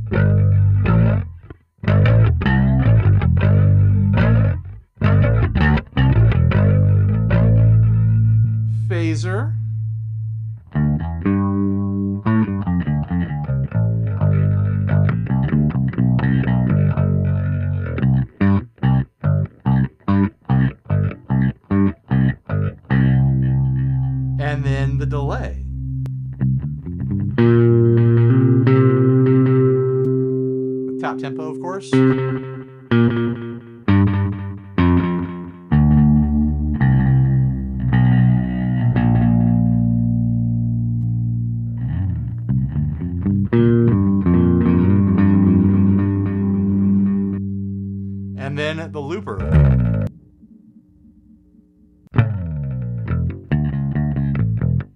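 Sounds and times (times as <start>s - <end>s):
electric bass with flanger: 0.0s - 54.9s.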